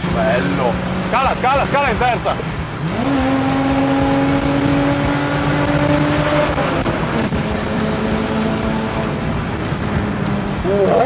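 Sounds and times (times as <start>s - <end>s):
car engine revving hard: 0.0s - 11.0s.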